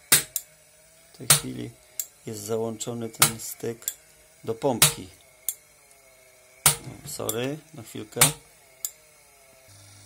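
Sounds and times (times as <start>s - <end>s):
sharp metallic clicks: 0.1s - 0.5s, 1.1s - 2.2s.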